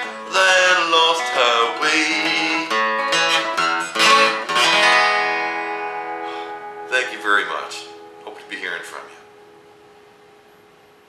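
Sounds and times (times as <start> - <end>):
harmonica playing: 0.0 - 9.7
acoustic guitar strumming: 0.0 - 11.0.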